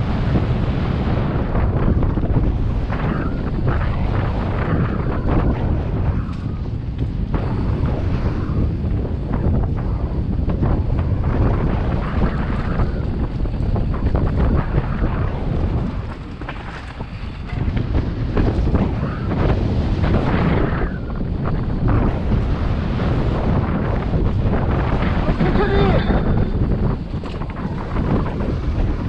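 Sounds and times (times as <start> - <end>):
bike tyres on dirt: 0.0 - 29.0
wind buffeting microphone: 0.0 - 29.0
bike rattling and knocking: 1.4 - 22.5, 23.1 - 29.0.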